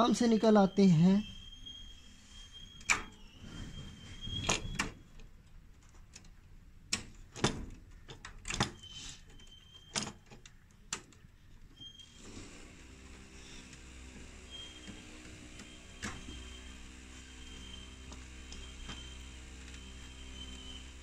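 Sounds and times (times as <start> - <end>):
wires rustling: 13.1 - 21.0.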